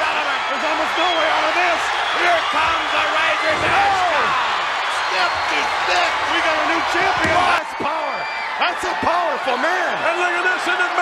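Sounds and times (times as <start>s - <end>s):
crowd yelling and cheering: 0.0s - 11.0s.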